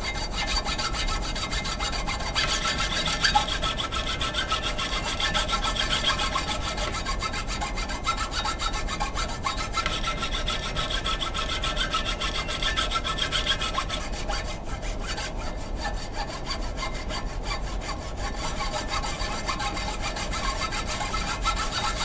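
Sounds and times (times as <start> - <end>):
hand saw cutting log: 0.0 - 22.0.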